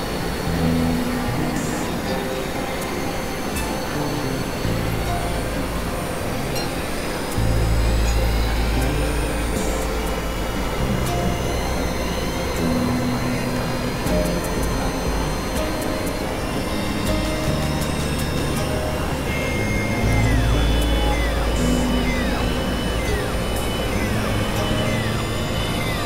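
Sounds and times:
electronic drone music: 0:00.0 - 0:26.0
high gliding tones: 0:00.0 - 0:26.0.

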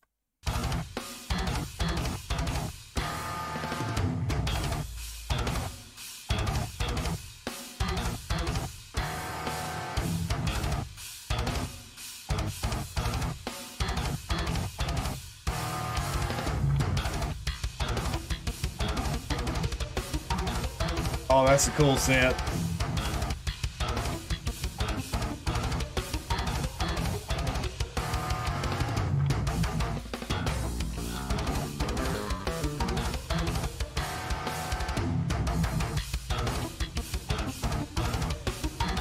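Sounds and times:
drums: 0:00.4 - 0:39.0
distorted electric guitar riffs: 0:00.5 - 0:07.2, 0:07.8 - 0:39.0.

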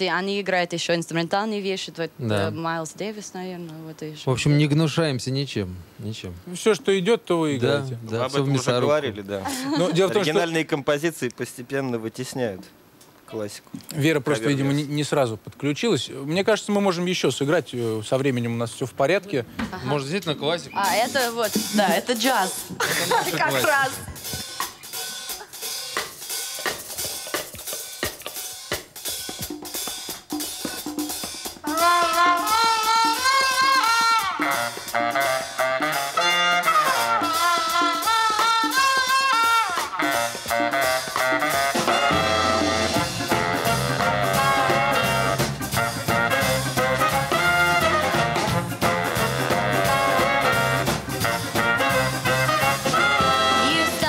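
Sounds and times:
drums and hand percussion: 0:19.5 - 0:54.0
horn section playing melody: 0:31.7 - 0:54.0
bass: 0:40.1 - 0:54.0.

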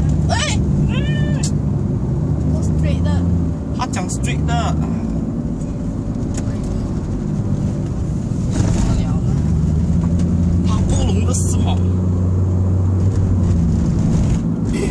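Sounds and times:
car engine and tyres drone: 0:00.0 - 0:14.9.

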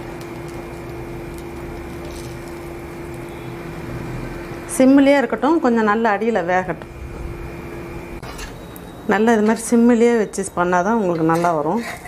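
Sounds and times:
omelette hissing in a frying pan: 0:00.0 - 0:04.3
faint hum: 0:01.1 - 0:11.2.

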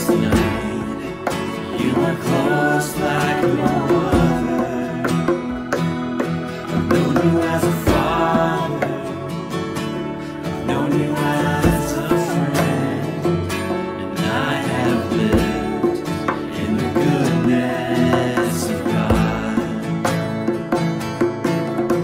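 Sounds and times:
guitar and plucked strings music: 0:00.0 - 0:22.0.

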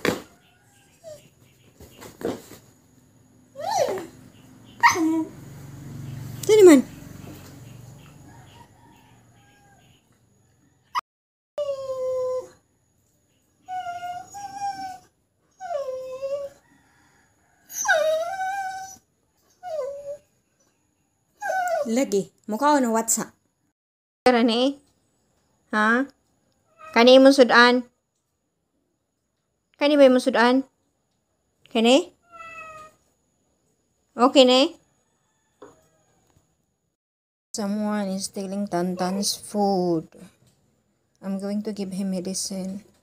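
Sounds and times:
dog howling: 0:04.8 - 0:05.4, 0:17.6 - 0:19.0
cat meowing: 0:32.2 - 0:33.0.

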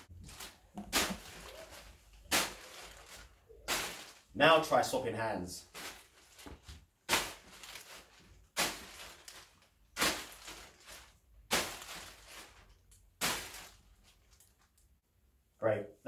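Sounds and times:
plastic bag rustling: 0:00.0 - 0:04.4, 0:05.6 - 0:14.8.

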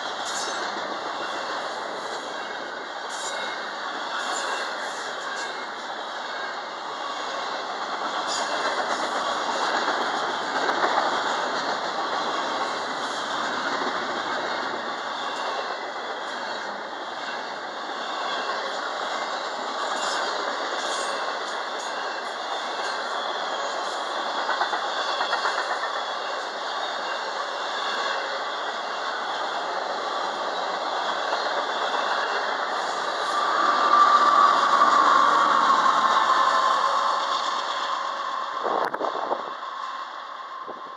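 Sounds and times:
steel wheels rattling on rail: 0:00.0 - 0:40.9.

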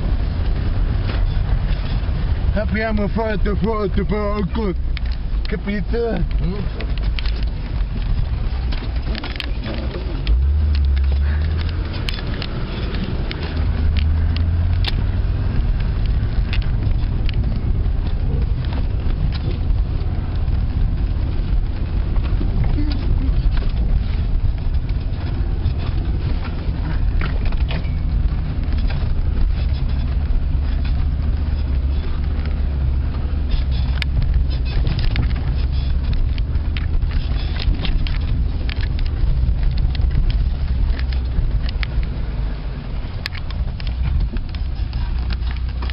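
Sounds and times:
engine and drivetrain rumble: 0:00.0 - 0:45.9
knocks and rattles: 0:00.0 - 0:45.9.

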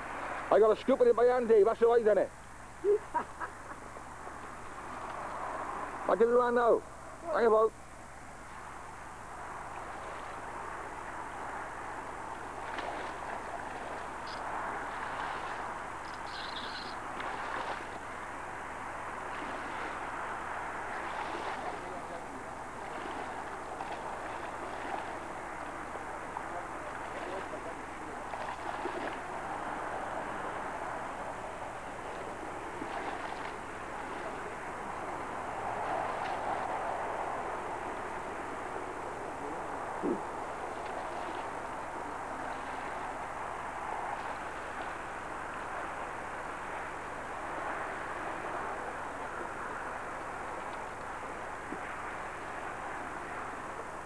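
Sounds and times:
outdoor noise: 0:00.0 - 0:54.0
wading through muddy water: 0:12.4 - 0:38.0, 0:39.6 - 0:43.5.

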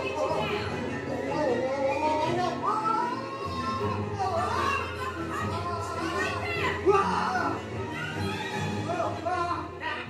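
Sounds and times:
film music: 0:00.0 - 0:10.0.

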